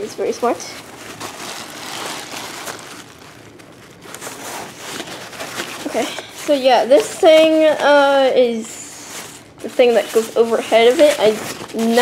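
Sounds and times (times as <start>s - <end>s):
fabric rustling and scraping: 0.4s - 12.0s.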